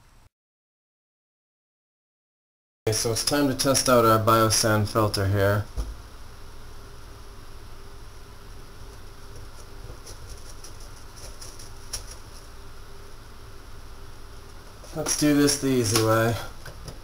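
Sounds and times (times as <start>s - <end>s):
low hum of room tone: 2.9s - 17.0s.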